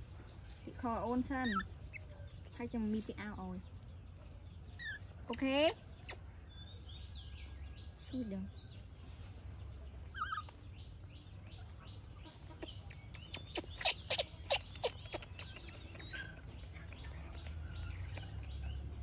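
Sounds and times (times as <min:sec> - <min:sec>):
faint birds chirping: 0:00.0 - 0:19.0.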